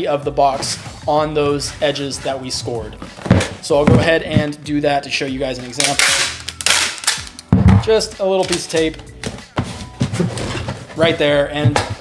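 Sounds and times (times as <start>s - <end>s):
packing tape ripping off tape gun: 5.8s - 7.4s.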